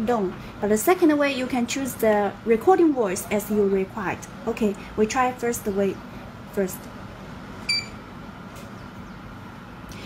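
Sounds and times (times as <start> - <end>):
high electronic keypad beep: 7.7 - 8.0.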